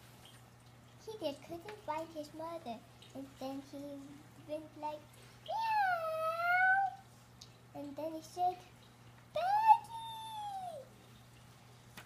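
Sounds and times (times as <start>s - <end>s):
child imitating a cat meow: 5.5s - 7.0s, 9.4s - 10.9s.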